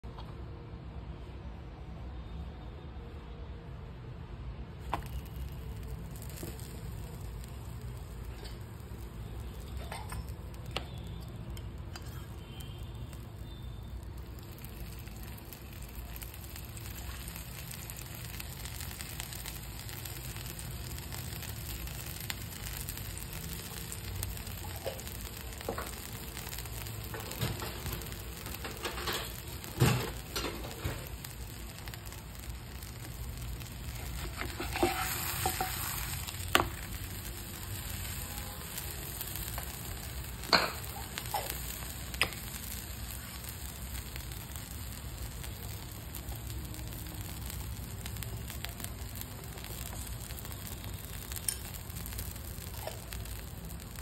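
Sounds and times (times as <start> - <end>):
flatbread sizzling in oil: 4.8 - 54.0.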